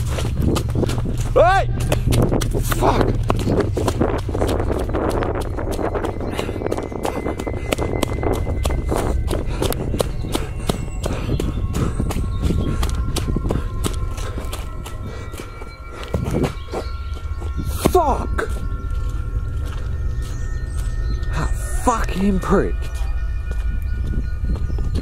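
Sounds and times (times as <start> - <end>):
microphone handling rumble: 0.0 - 21.7
running footsteps on dirt: 0.0 - 25.0
wind: 0.0 - 25.0.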